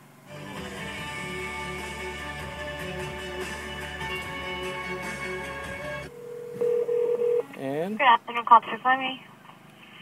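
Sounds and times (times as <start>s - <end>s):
music from car speakers: 0.3s - 6.1s
telephone ringback tone: 6.1s - 7.5s.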